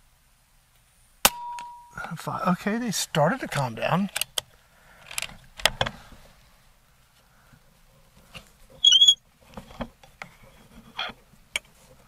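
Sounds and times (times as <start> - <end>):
air rifle action clicks: 4.1 - 6.0
short high squeak: 8.8 - 9.2.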